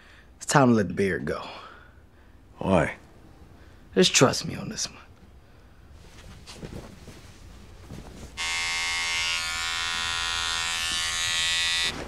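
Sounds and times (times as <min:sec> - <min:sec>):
electric razor buzzing: 0:08.4 - 0:12.0.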